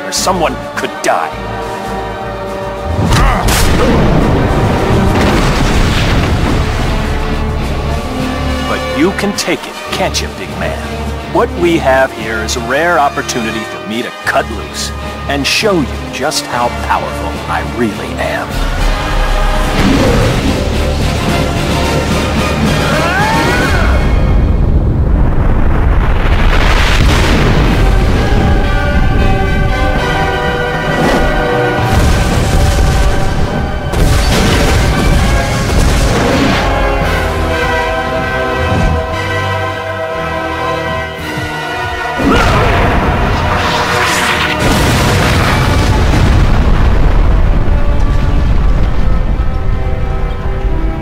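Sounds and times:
film score: 0:00.0 - 0:51.0
deep rumbling blast: 0:02.8 - 0:09.0, 0:18.5 - 0:39.8, 0:42.2 - 0:51.0
rushing crash with debris: 0:02.9 - 0:08.4, 0:25.4 - 0:29.0, 0:30.9 - 0:37.8, 0:42.2 - 0:49.5.

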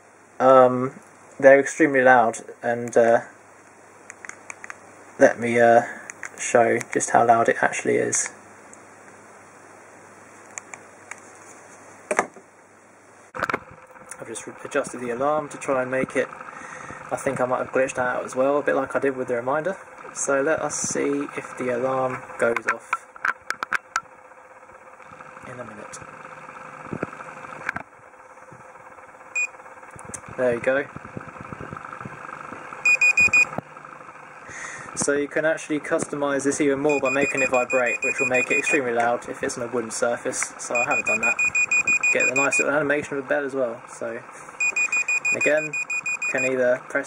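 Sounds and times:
phone alarm short high beeps: 0:32.8 - 0:33.5, 0:36.9 - 0:38.8, 0:40.7 - 0:42.7, 0:44.6 - 0:46.6.

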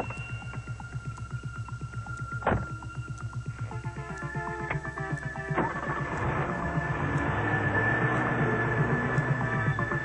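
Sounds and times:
synthesizer music with pulsing beat: 0:00.0 - 0:10.0.

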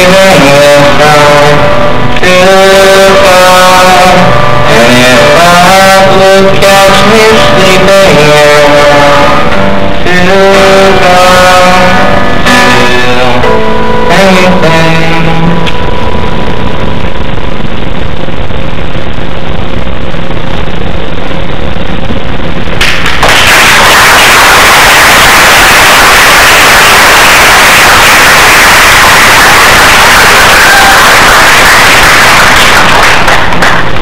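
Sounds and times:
audience applauding: 0:22.8 - 0:34.0.

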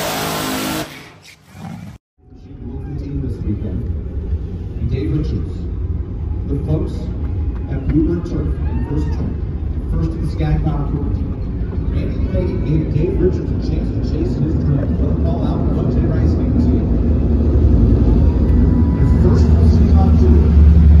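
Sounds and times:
vehicle engine rumble: 0:01.9 - 0:21.0
crowd voices: 0:05.5 - 0:21.0.

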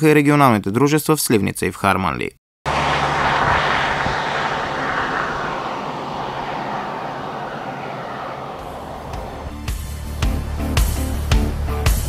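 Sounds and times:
motor vehicle passing by: 0:02.7 - 0:09.8
music: 0:09.5 - 0:12.0.

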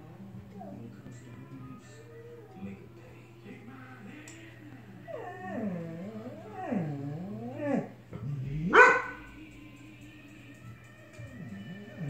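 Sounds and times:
dog whining: 0:05.0 - 0:09.1, 0:11.1 - 0:12.0
dog barking: 0:08.7 - 0:09.2.

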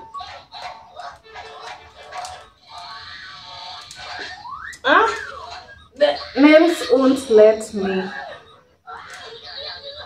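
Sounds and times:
tablet music: 0:00.0 - 0:10.0.

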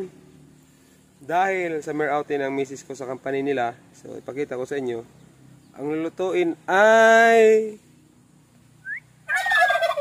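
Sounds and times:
turkey gobbling: 0:08.8 - 0:10.0.

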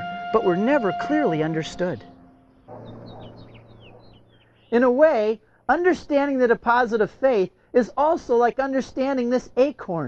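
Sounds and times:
small bird chirping: 0:02.0 - 0:05.0.

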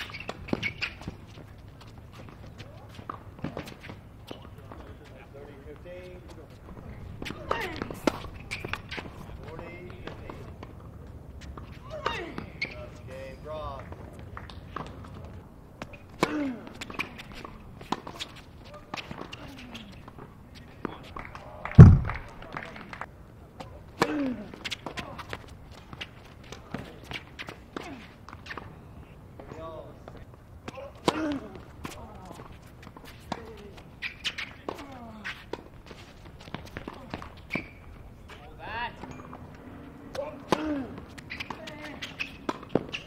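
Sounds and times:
shoe squeaks: 0:00.0 - 0:02.7, 0:07.2 - 0:09.2, 0:11.4 - 0:13.0, 0:32.6 - 0:39.5, 0:41.1 - 0:43.0
players' footsteps: 0:00.0 - 0:43.0
racket hitting tennis ball: 0:21.8 - 0:22.3, 0:40.1 - 0:43.0
running footsteps: 0:21.8 - 0:22.4
tennis ball bouncing: 0:21.8 - 0:22.4, 0:40.2 - 0:43.0
tennis ball knocks: 0:21.8 - 0:22.4.

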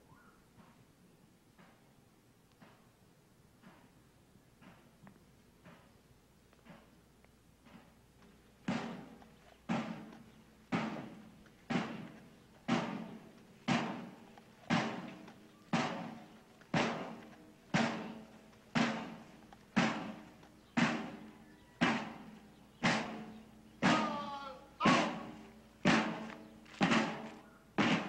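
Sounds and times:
marching drum strokes: 0:06.6 - 0:28.0.

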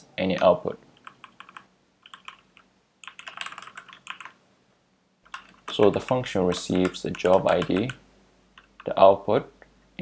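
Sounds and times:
typing on computer keyboard: 0:01.0 - 0:04.4, 0:05.2 - 0:08.0.

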